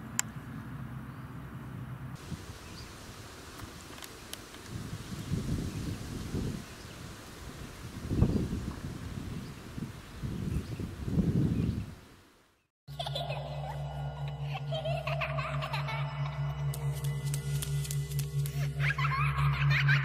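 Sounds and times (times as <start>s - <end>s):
wind buffeting microphone: 4.6s - 12.2s
background music: 12.9s - 20.0s.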